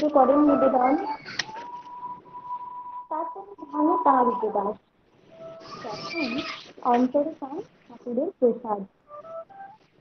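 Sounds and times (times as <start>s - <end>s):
woman reciting verse: 0.0s - 1.1s.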